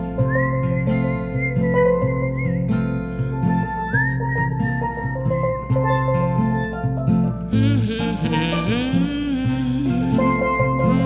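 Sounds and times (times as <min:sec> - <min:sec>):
acoustic guitar: 0:00.0 - 0:11.0
bass: 0:00.0 - 0:11.0
whistled melody: 0:00.0 - 0:11.0.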